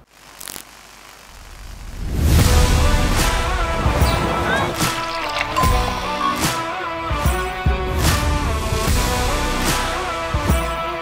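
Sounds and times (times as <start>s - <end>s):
faint steady hiss: 0.0s - 2.3s.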